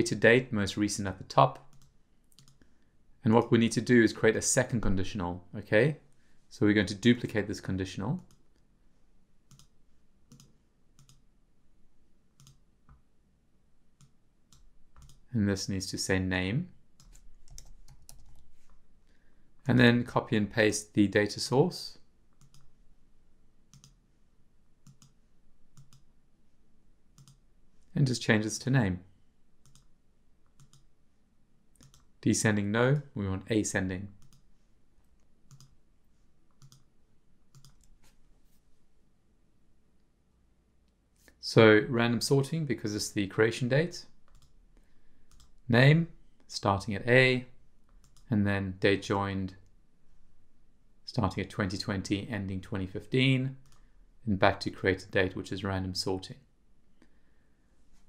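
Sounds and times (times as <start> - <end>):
computer mouse clicks: 1.6 - 2.7, 8.2 - 8.6, 9.5 - 11.2, 12.4 - 13.0, 14.0 - 15.2, 17.0 - 18.8, 22.3 - 22.7, 23.7 - 24.0, 24.8 - 26.1, 27.2 - 27.4, 29.6 - 30.9, 31.8 - 32.1, 34.2 - 34.5, 35.2 - 35.8, 36.5 - 36.9, 37.5 - 38.1, 44.3 - 44.6, 45.3 - 45.6, 47.9 - 48.3, 53.6 - 53.9
faint computer mouse clicks: 1.7 - 2.7, 10.3 - 11.2, 12.4 - 13.0, 25.8 - 26.1, 27.2 - 27.4, 30.5 - 30.9.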